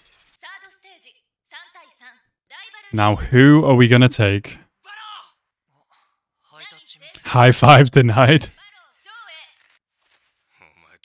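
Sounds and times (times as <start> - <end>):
faint dialogue: 1.0 - 9.6.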